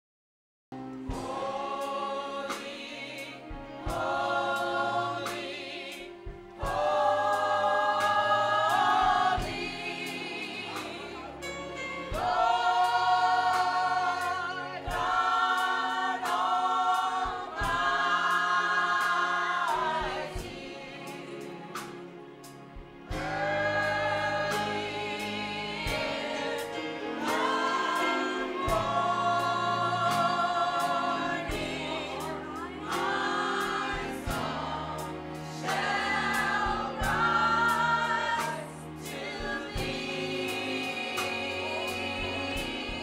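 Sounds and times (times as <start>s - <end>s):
women's gospel choir singing: 1.0s - 43.0s.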